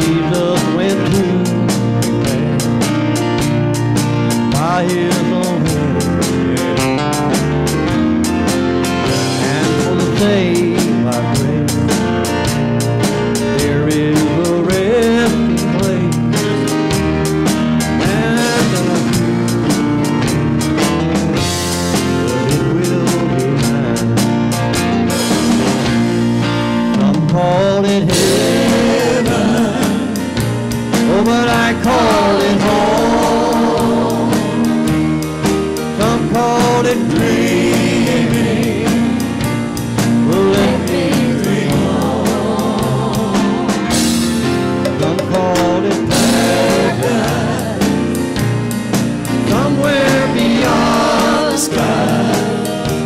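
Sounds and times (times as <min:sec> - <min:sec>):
people singing: 0:00.0 - 0:02.9, 0:04.5 - 0:07.6, 0:09.1 - 0:12.0, 0:13.4 - 0:16.4, 0:17.6 - 0:24.3, 0:27.0 - 0:53.0
drum kit beat: 0:00.0 - 0:53.0
electric guitars: 0:00.0 - 0:53.0
gospel band playing: 0:00.0 - 0:53.0
keyboards: 0:00.0 - 0:53.0.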